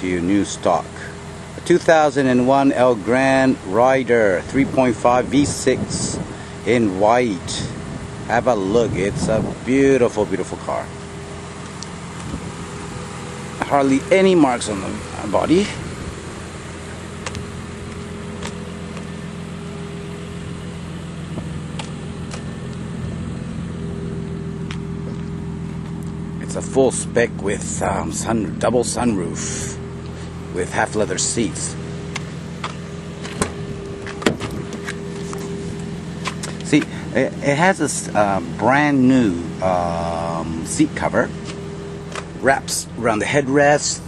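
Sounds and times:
outdoor background noise: 0.0s - 44.0s
steady mechanical hum: 0.1s - 44.0s.

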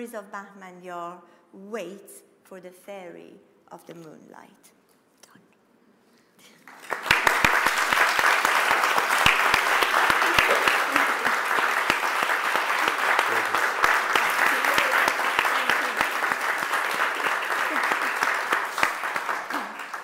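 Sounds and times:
audience applause: 6.7s - 20.0s.

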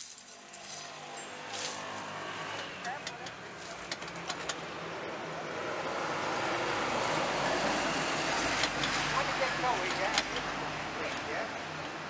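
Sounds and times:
vehicle going by: 0.6s - 11.7s.

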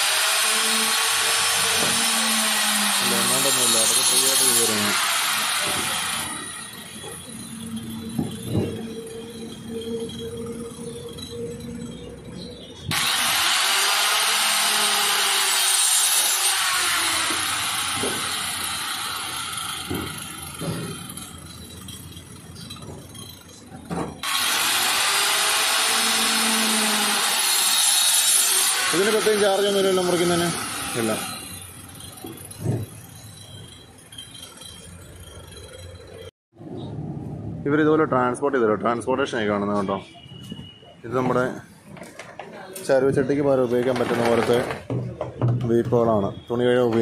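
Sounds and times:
circular saw cutting plastic: 0.0s - 36.3s, 43.5s - 44.9s.

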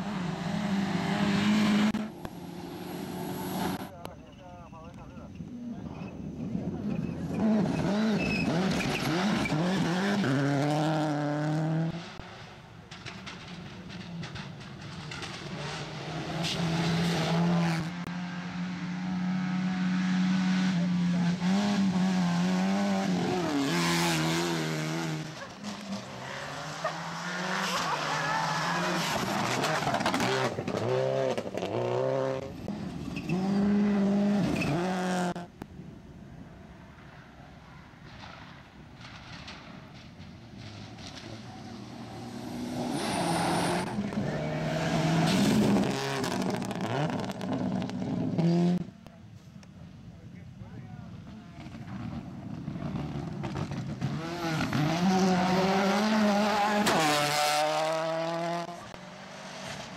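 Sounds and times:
rally cars passing at full throttle: 0.0s - 3.9s, 5.4s - 49.2s, 51.1s - 59.9s.

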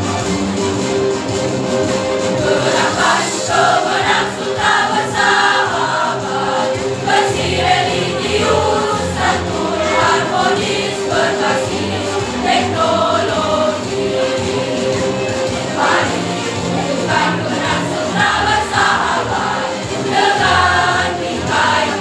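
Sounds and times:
choir singing: 2.0s - 22.0s.

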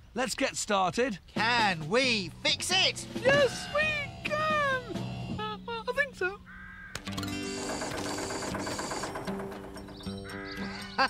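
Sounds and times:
light background music: 1.3s - 11.0s
cartoon voices shouting: 3.2s - 5.0s.

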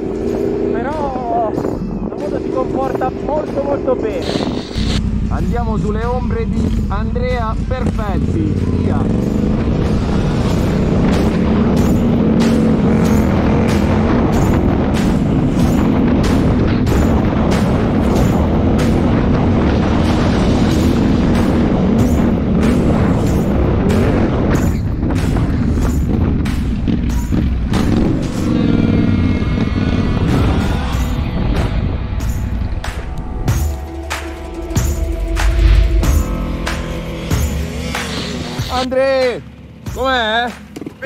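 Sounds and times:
background music with beat: 0.0s - 38.9s
low rumble of wind: 0.0s - 41.0s
motorcycle engine: 0.0s - 41.0s.

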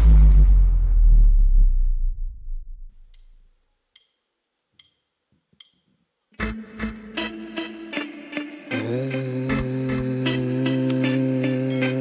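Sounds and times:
deep bass rumble: 0.0s - 3.2s.

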